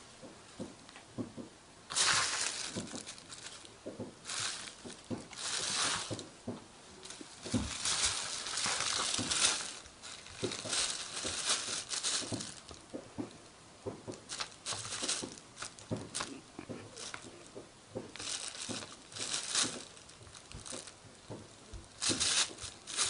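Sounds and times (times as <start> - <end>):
plastic bag crinkling and rustling: 1.2 - 23.0.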